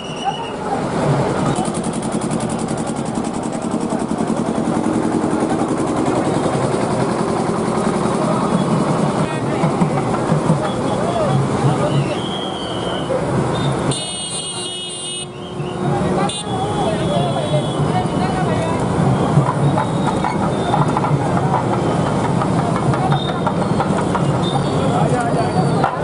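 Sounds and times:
crowd voices: 0.0 - 26.0
horn toot: 13.6 - 15.5.

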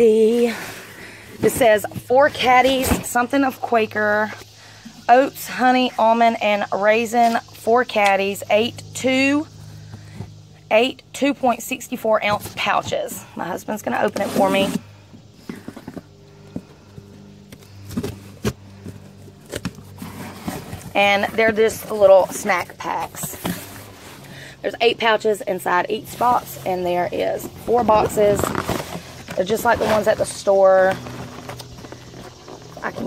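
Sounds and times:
steady low hum: 0.0 - 33.0
cardboard boxes tapping and rustling: 1.3 - 3.9, 15.4 - 24.0, 27.2 - 33.0.

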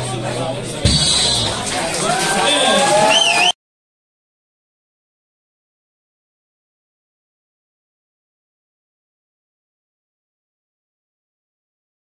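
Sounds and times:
crowd noise: 0.0 - 3.6.

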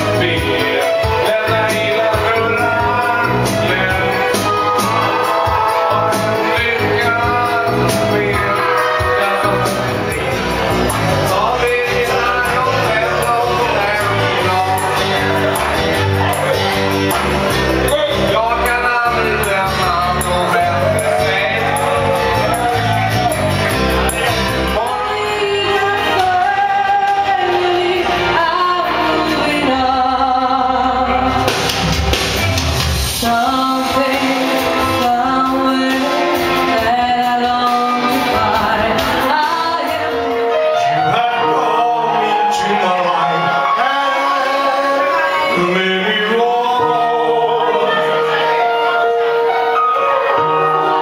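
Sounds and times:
man singing into a microphone: 0.0 - 31.5, 33.1 - 51.0
backing track music: 0.0 - 51.0
woman singing karaoke: 24.8 - 31.5, 33.2 - 40.7.

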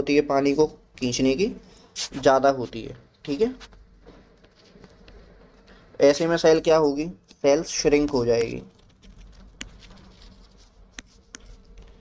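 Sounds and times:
stylus tapping on screen: 8.0 - 12.0.

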